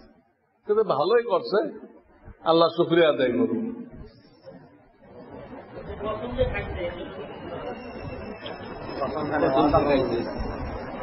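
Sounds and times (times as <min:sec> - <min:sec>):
indistinct voices talking: 0:02.4 - 0:11.0.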